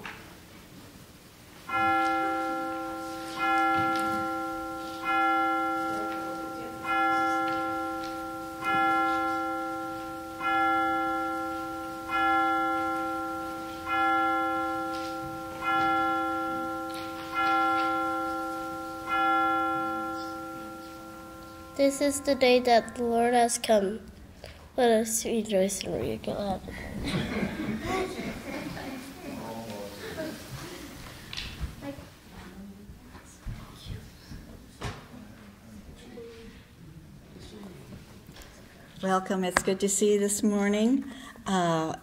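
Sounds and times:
bell tolling: 1.7 - 24.1.

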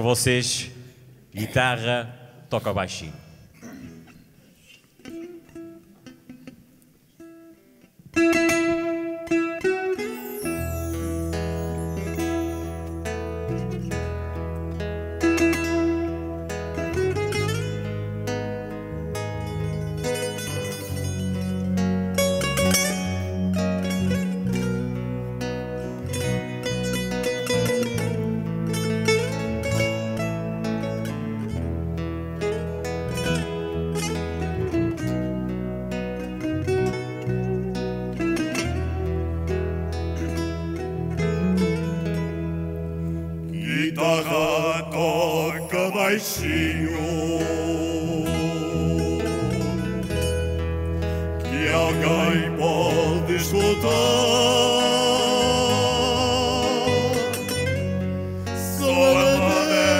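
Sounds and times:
guitar picking quick plucked notes: 5.0 - 45.2, 46.0 - 59.9
bass line: 10.5 - 44.2, 46.4 - 59.9.

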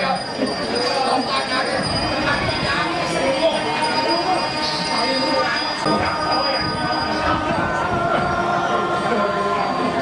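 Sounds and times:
murmur of voices: 0.0 - 10.0
sustained metallic ringing tones: 0.0 - 10.0.

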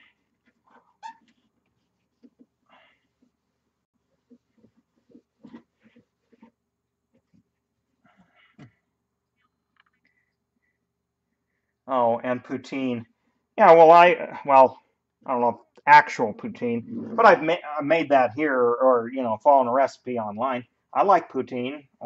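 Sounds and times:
soft squeaks: 0.6 - 3.0.

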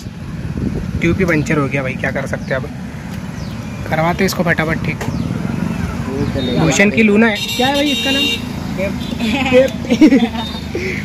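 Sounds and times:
road traffic: 0.0 - 11.0
men talking: 0.8 - 11.0
vehicle horn: 7.3 - 9.3.

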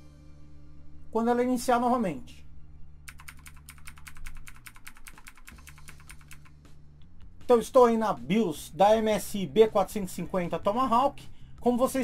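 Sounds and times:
keyboard key tapped rapidly: 3.1 - 6.5.

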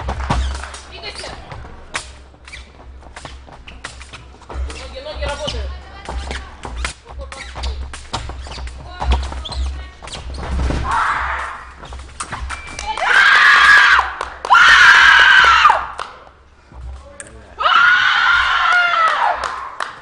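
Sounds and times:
quick footwork: 0.0 - 14.8
fencing blades clicking: 0.3 - 8.8.

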